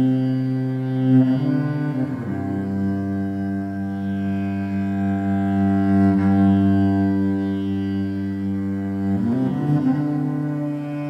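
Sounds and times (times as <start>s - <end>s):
cello low drone note: 0.0s - 11.0s.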